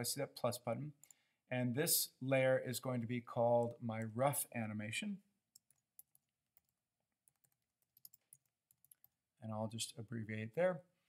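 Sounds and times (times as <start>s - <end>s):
keystrokes on computer keyboard: 5.5s - 9.2s.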